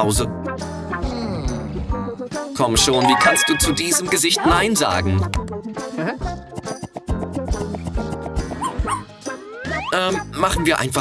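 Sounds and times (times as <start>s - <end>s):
background music: 0.0s - 11.0s
puppy yipping: 8.6s - 9.1s.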